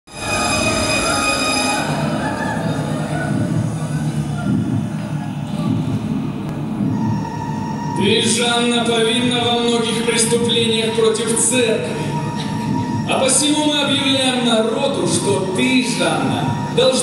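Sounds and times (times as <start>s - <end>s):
high steady tones: 0.1s - 17.0s.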